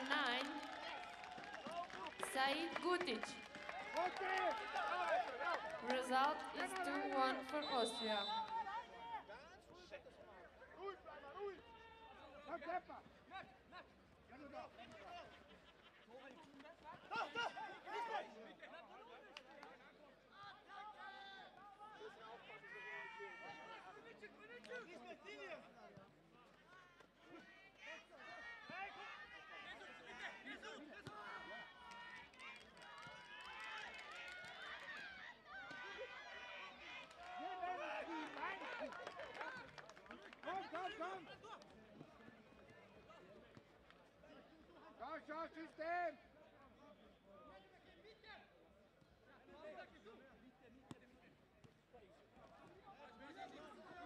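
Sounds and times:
background talk: 35.0s - 54.0s.

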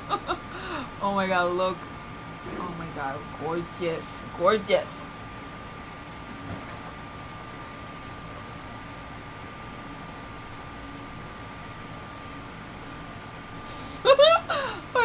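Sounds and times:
air conditioner noise: 0.0s - 15.0s
thin constant whine: 0.0s - 15.0s.

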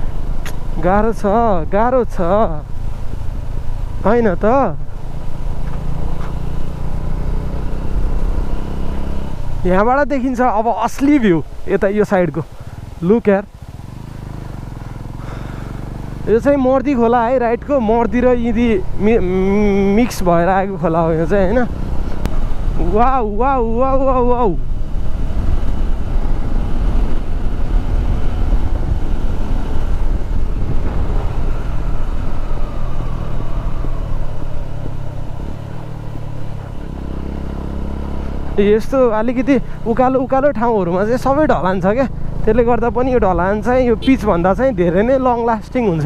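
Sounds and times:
motorcycle engine running: 0.0s - 46.0s
road and wind noise: 0.0s - 46.0s.

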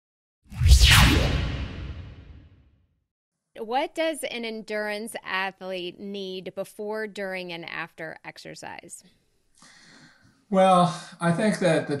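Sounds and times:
deep rumble: 0.5s - 2.4s
whoosh sweeping down: 0.5s - 2.5s.

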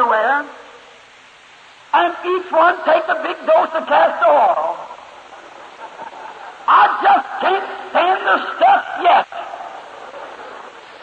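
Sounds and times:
recording hiss: 0.0s - 11.0s
man preaching: 1.9s - 5.0s, 6.7s - 9.7s.

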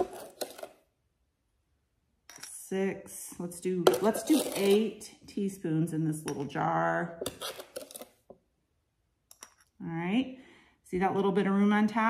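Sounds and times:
metal teaspoon scraping plastic container: 0.0s - 0.8s, 3.8s - 5.1s, 7.2s - 8.2s.

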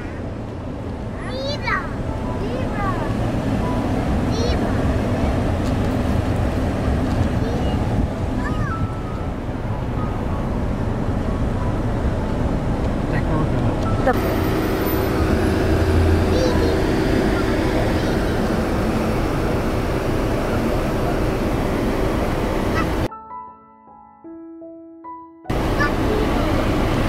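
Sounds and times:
car rolling rumble: 0.0s - 23.1s, 25.5s - 27.0s.

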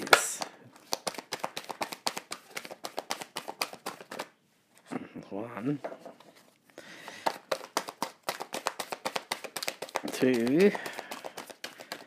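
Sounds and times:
cards being shuffled by hand: 0.0s - 4.3s, 5.8s - 12.0s.

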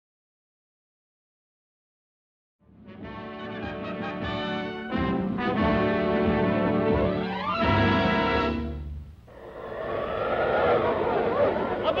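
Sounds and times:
rushing sweeping tone: 9.3s - 12.0s.

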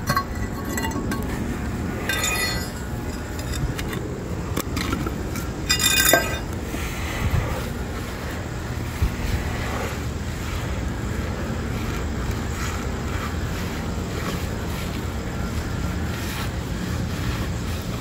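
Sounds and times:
knocks of tools and stone: 0.0s - 1.4s, 2.0s - 6.5s
ringing metallic clink: 0.0s - 1.4s, 2.0s - 3.8s, 5.6s - 6.5s
wind rumbling on microphone: 0.0s - 18.0s.

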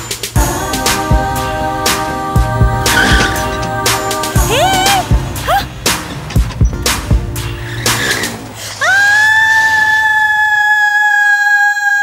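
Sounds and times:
woman screaming: 4.4s - 5.7s, 8.8s - 12.0s.

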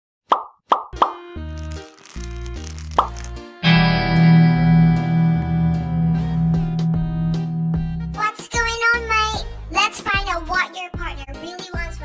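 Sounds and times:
cartoon pop sound effects: 0.3s - 1.3s
sustained chord: 3.6s - 9.2s
plucked melody over bass line: 3.6s - 9.3s.

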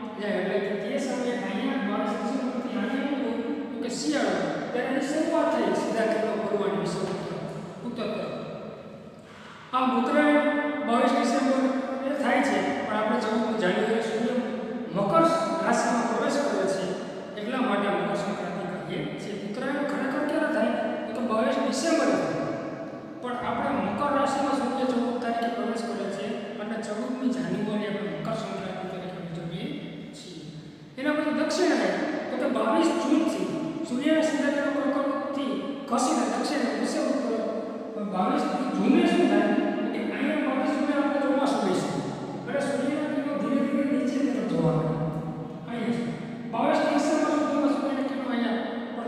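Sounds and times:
man lecturing: 0.0s - 8.4s, 9.2s - 22.4s, 23.2s - 49.0s
man speaking: 0.0s - 8.4s, 9.3s - 22.4s, 23.2s - 49.0s.

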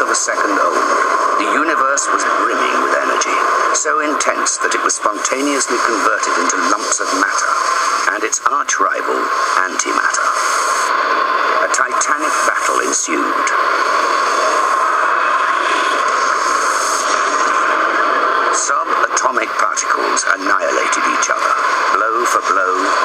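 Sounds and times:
steady rushing noise: 0.0s - 23.0s.

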